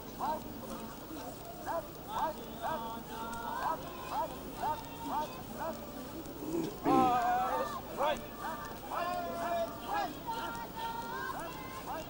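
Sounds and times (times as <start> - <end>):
children shouting in cadence: 6.6 - 12.0.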